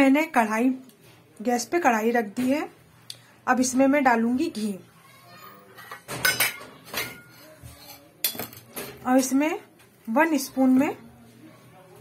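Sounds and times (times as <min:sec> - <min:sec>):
metal spoon clinking: 0:05.8 - 0:09.0.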